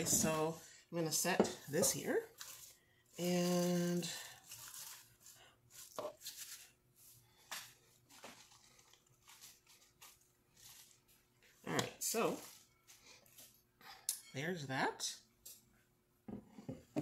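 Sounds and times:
spinach leaves rustling: 0:01.9 - 0:06.7, 0:08.1 - 0:13.2.

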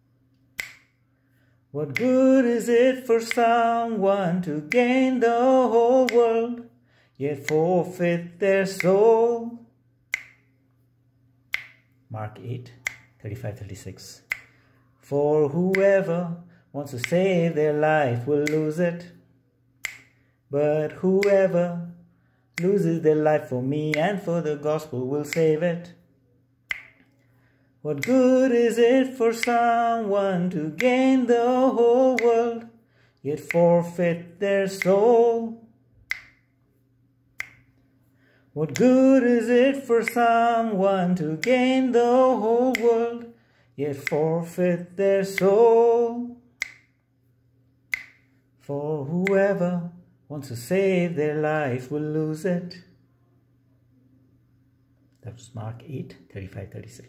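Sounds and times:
faint low hum: 0:00.0 - 0:57.0
finger snaps: 0:00.2 - 0:53.0
short sharp clicks: 0:00.3 - 0:01.0, 0:01.9 - 0:06.6, 0:07.3 - 0:09.2, 0:10.1 - 0:10.6, 0:12.7 - 0:14.7, 0:18.1 - 0:19.2, 0:19.8 - 0:20.2, 0:25.2 - 0:26.0, 0:26.7 - 0:27.3, 0:28.0 - 0:29.8, 0:30.4 - 0:32.7, 0:33.3 - 0:35.3, 0:36.0 - 0:36.6, 0:37.4 - 0:37.9, 0:38.7 - 0:43.3, 0:43.9 - 0:47.0, 0:47.9 - 0:48.4.

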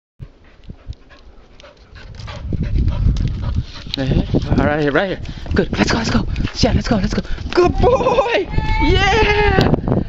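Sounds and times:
puppy panting: 0:00.2 - 0:04.4.

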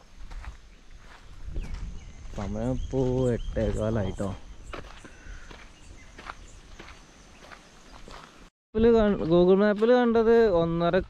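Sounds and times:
footsteps on dirt road: 0:00.0 - 0:11.0
man's voice: 0:02.3 - 0:04.4, 0:08.8 - 0:11.0.

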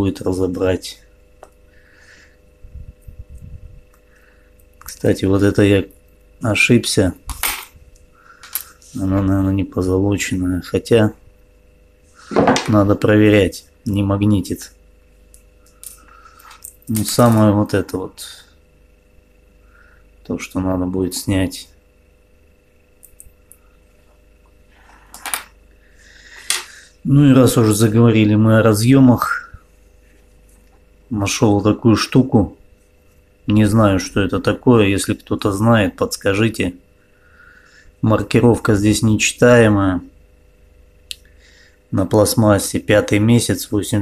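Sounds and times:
small parts clicking in hand: 0:15.3 - 0:17.4.

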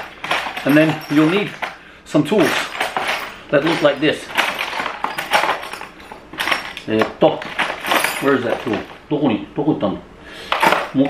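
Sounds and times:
metal tools clattering in toolbox: 0:00.0 - 0:09.0, 0:10.5 - 0:11.0.

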